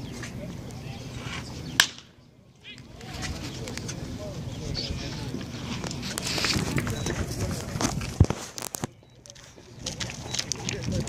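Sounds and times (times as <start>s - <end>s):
voices of players and spectators: 0.0s - 11.0s
wooden bat hitting baseball: 1.8s - 2.2s.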